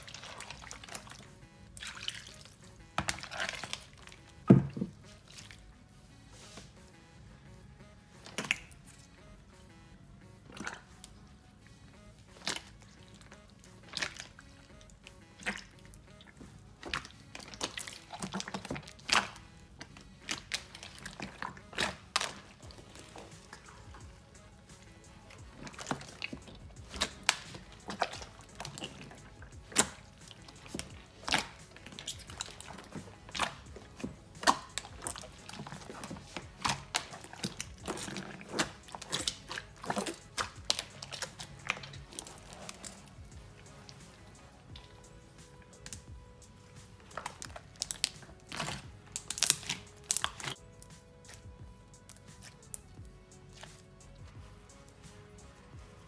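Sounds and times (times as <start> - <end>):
hands squelching slime: 0.0 - 6.9, 8.2 - 9.2, 10.3 - 56.0
faint background music: 0.0 - 56.0.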